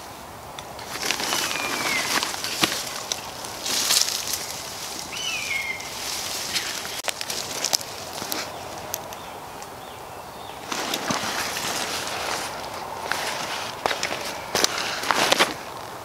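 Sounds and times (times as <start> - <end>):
bird falling whistled call: 5.1 - 5.9
fabric rustling: 10.6 - 15.7.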